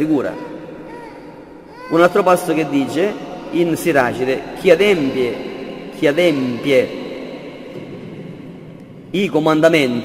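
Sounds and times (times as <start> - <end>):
echo of man's voice: 0.0 - 10.0.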